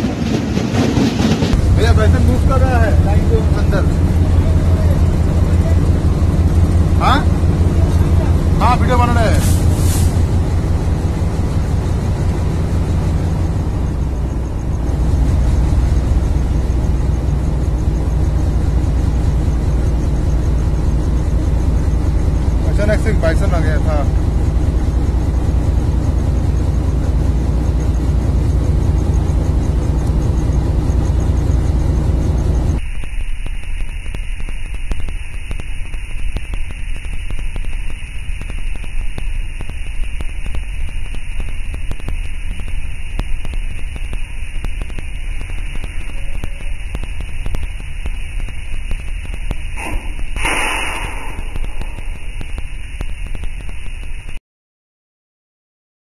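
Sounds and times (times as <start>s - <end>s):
diesel locomotive rumble: 0.0s - 32.9s, 37.4s - 53.6s
steady high hiss: 32.8s - 54.4s
brief wavering warble: 49.8s - 52.4s.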